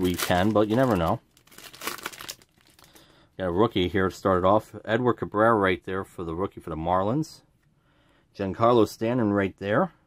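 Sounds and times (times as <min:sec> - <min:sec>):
plastic wrapper crinkling: 0:00.0 - 0:03.1.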